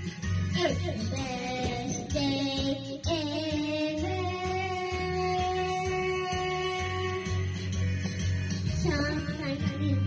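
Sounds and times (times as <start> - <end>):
backing track with steady beat: 0.0 - 10.0
child singing karaoke: 0.5 - 7.8, 8.6 - 10.0.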